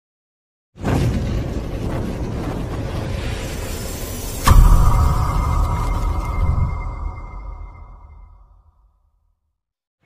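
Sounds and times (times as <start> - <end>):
rushing noise: 0.9 - 8.7
heavy low rumble: 1.0 - 8.7.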